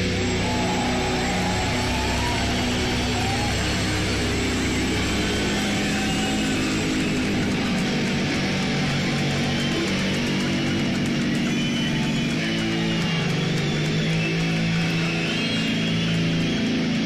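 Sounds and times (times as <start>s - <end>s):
live heavy metal band: 0.0s - 17.0s.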